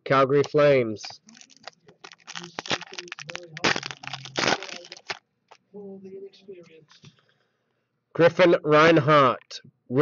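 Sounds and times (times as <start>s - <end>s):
foil wrapper crinkling and tearing: 1.3s - 5.2s.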